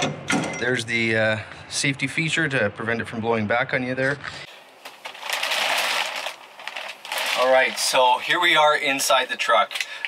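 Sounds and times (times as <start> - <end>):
plastic wrap crinkling: 4.8 - 10.0.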